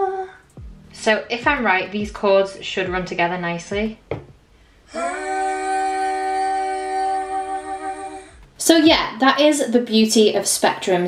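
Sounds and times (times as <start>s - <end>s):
sustained hummed vocal chord: 0.0s - 1.2s, 4.9s - 8.5s.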